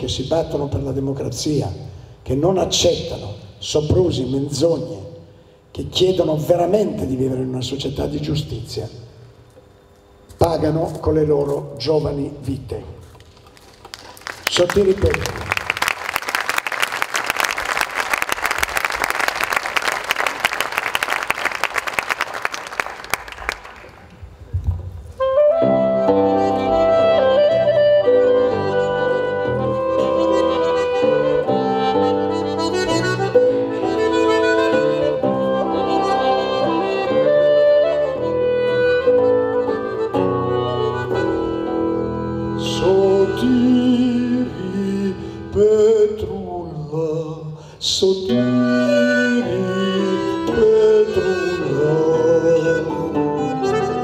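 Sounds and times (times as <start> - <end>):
audience applause: 13.8 - 24.2
folk ensemble with accordion: 25.2 - 46.0, 48.4 - 54.0.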